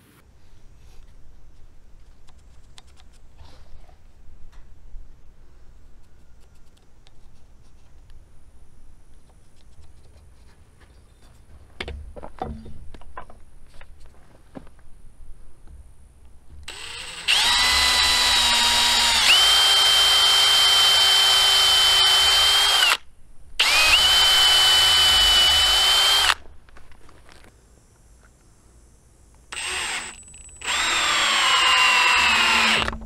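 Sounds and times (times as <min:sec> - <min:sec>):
electric drill boring into wood: 0:16.7 - 0:23.0, 0:23.6 - 0:26.4, 0:29.5 - 0:33.0.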